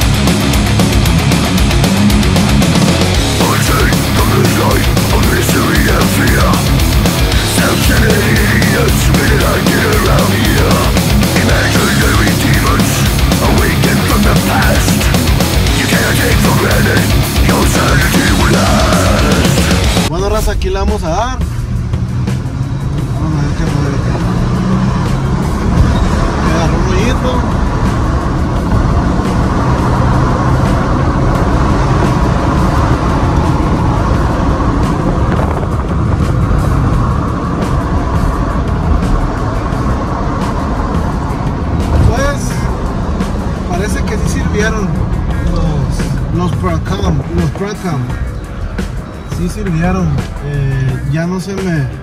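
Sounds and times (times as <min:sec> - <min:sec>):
car engine: 0:00.0 - 0:52.0
music playing: 0:00.0 - 0:52.0
road noise: 0:00.0 - 0:52.0.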